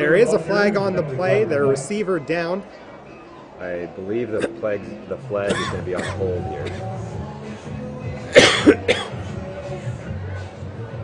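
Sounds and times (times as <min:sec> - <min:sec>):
person coughing: 0:04.4 - 0:04.6, 0:05.5 - 0:06.9, 0:08.3 - 0:09.2.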